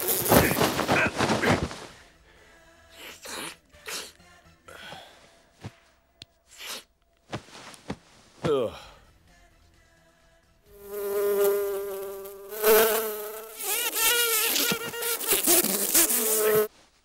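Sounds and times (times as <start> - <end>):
housefly buzzing: 0.0 - 1.6, 10.8 - 16.7.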